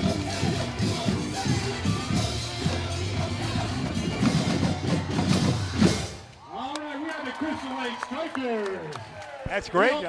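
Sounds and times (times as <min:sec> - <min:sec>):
drum corps drumming: 0:00.0 - 0:06.2.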